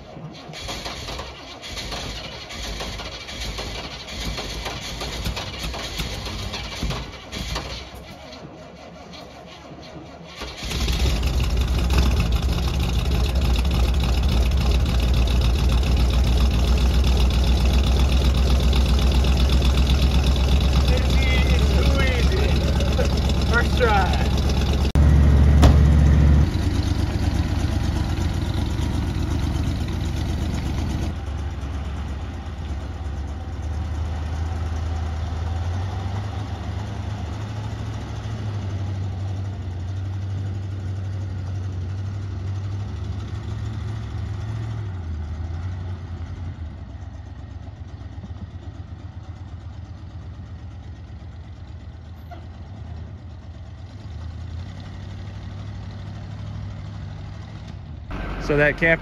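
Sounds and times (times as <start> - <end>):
engine rumbling as vehicle drives: 0.0 - 59.0.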